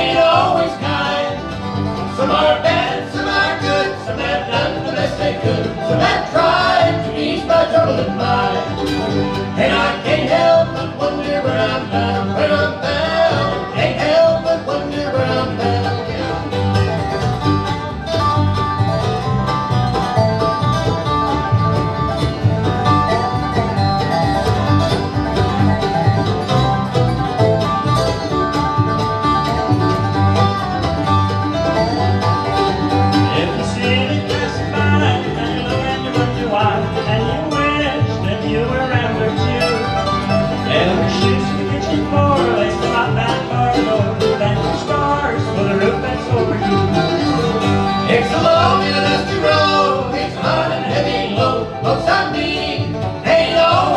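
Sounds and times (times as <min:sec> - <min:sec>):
bluegrass band playing: 0:00.0 - 0:53.9.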